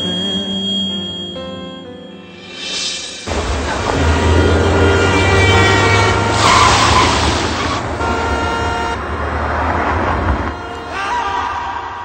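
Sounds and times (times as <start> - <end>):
vehicle rushing past: 2.6 - 10.5
car horns: 3.3 - 12.0
traffic engine rumble: 3.3 - 12.0.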